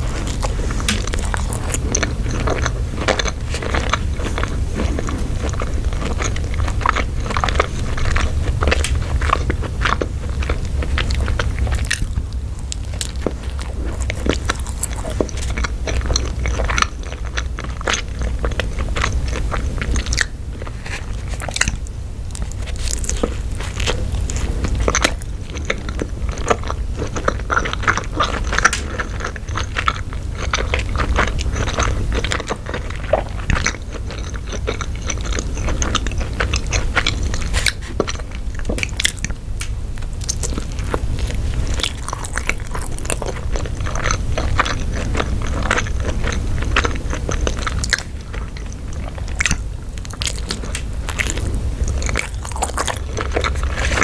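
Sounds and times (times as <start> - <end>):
biting food: 0.0 - 54.0
person chewing food: 0.0 - 54.0.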